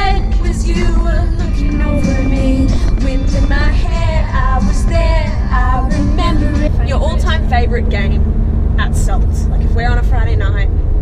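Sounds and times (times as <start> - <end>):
car rumble from inside cabin: 0.0 - 11.0
women talking: 6.2 - 8.2, 8.8 - 10.7.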